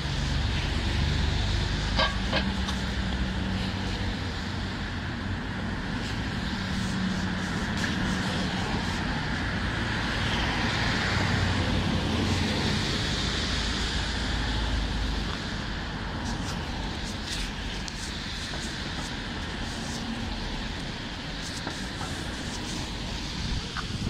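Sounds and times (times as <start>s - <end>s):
cars passing with tyre hiss: 0.0s - 24.0s.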